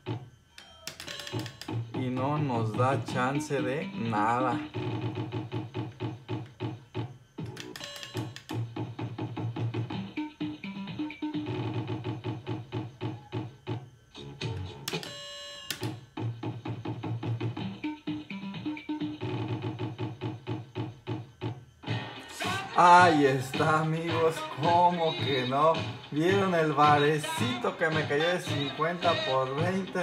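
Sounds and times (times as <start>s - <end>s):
slot machine electronic music: 0.0s - 30.0s.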